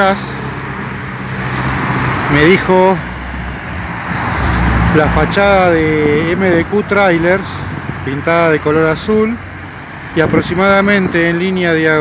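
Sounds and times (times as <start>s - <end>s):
cars driving past: 0.0s - 12.0s.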